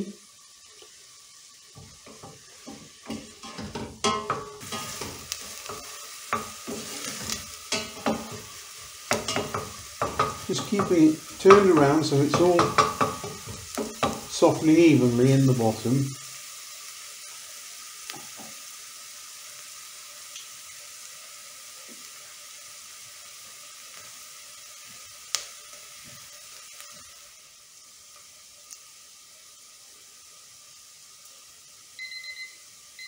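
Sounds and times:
onion and garlic sizzling in butter: 0.0 - 33.0
kitchen timer beeping: 32.0 - 33.0.

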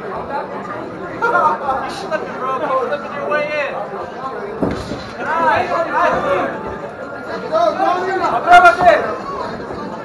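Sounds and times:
voices calling out and chattering: 0.0 - 10.0.

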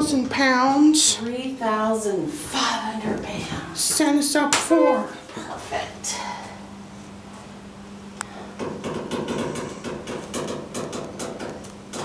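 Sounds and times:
steady low hum: 0.0 - 12.0
knocks and rattles: 8.6 - 12.0.

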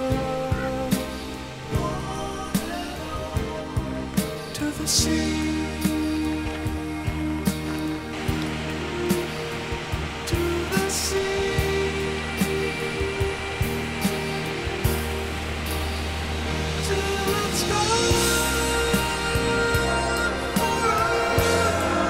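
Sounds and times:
slow instrumental song: 0.0 - 22.0
water rushing over spillway: 0.0 - 22.0.

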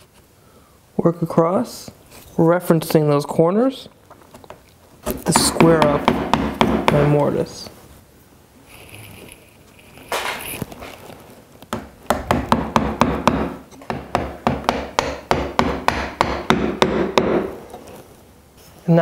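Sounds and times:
mallet striking chisel: 5.1 - 7.1, 11.7 - 17.5.

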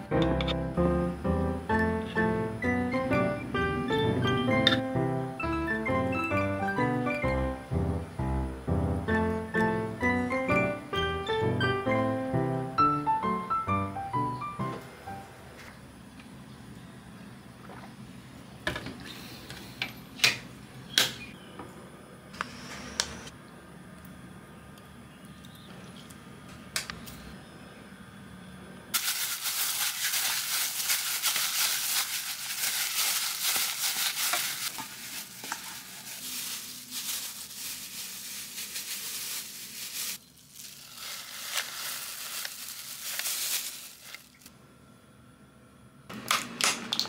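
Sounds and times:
plastic gloves crinkling: 29.0 - 44.5.

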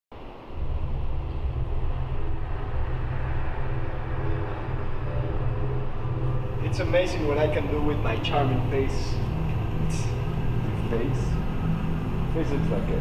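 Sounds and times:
steady low rumble: 0.1 - 13.0.

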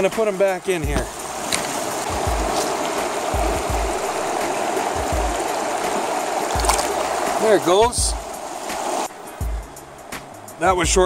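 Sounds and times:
stream rushing over rocks: 0.0 - 10.7
phone handling bumps: 0.8 - 2.5.

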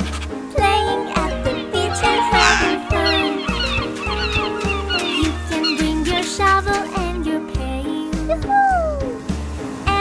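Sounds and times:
seagulls calling: 0.0 - 7.1
upbeat children's music: 0.0 - 10.0.

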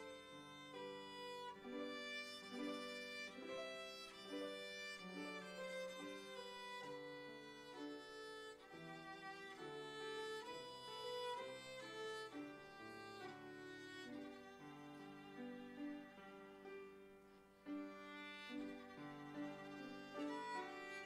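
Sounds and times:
bowed violin melody: 0.0 - 21.0.

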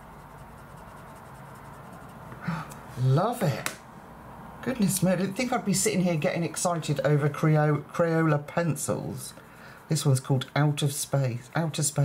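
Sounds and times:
coloured pencil scratching on paper: 0.0 - 2.4.

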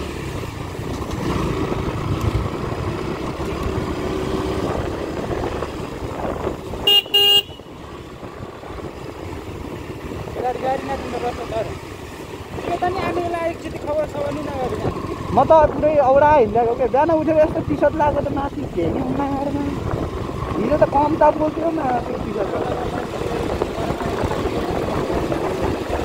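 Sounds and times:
motorcycle engine and wind rumble: 0.0 - 26.0
vehicle horn beeps: 6.8 - 7.7.

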